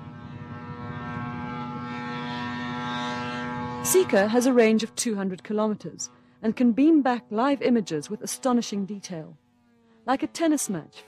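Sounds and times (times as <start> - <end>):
aircraft engine and propeller buzz: 0.0 - 11.0.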